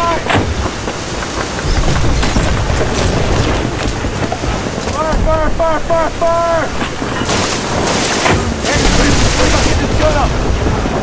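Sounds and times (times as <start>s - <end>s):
gunshots: 7.2s - 10.0s.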